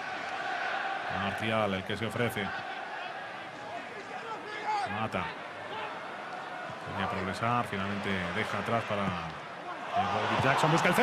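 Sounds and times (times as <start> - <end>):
crowd calls and shouts: 0.0 - 11.0
stadium crowd murmur: 0.0 - 11.0.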